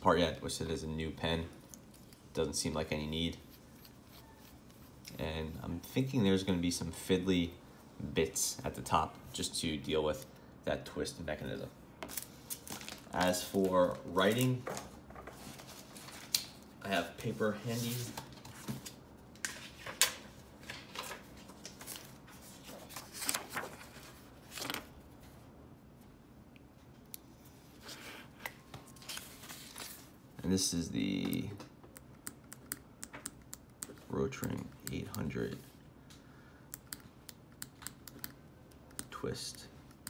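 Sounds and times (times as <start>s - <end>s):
paper rustling: 17.4s - 25.4s, 27.8s - 30.2s.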